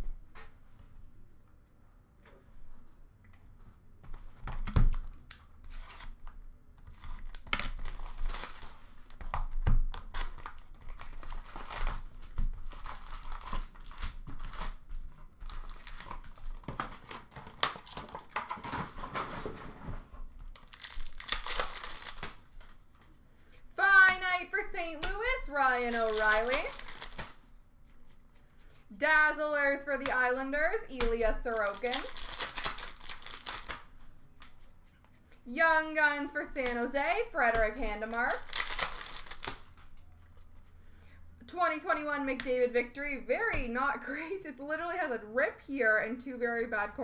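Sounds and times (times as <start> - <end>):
plastic wrappers crinkling and tearing: 6.8 - 19.1, 20.2 - 23.2, 25.2 - 28.2, 30.8 - 34.0, 37.7 - 40.1
person speaking: 23.7 - 27.0, 28.9 - 32.2, 35.4 - 38.5.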